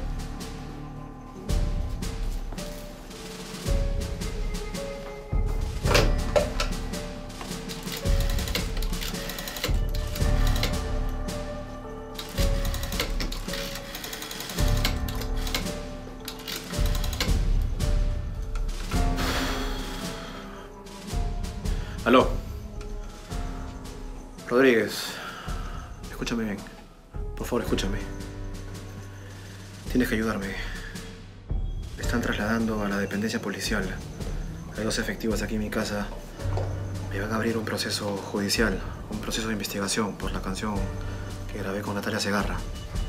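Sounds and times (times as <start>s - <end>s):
music with held shifting notes: 0.0s - 43.0s.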